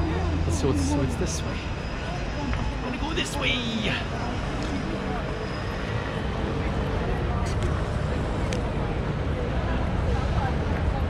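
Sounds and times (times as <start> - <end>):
faint voices of passersby: 0.0 - 11.0
low city rumble: 0.0 - 11.0.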